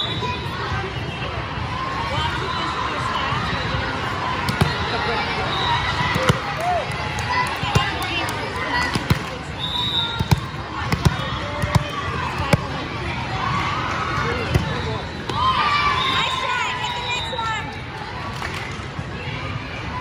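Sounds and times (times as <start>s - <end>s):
chatter and calls in gym: 0.0s - 20.0s
volleyball bouncing on court floor: 4.4s - 5.0s, 5.9s - 6.7s, 7.3s - 12.8s, 14.4s - 15.4s
volleyball serve strike: 4.4s - 5.0s, 5.9s - 6.6s, 8.8s - 9.4s, 10.0s - 12.8s, 14.4s - 15.4s.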